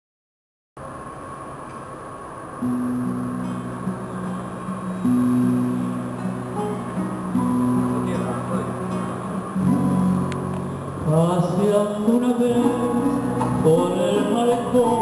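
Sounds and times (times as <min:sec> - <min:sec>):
plucked strings: 0:02.6 - 0:15.0.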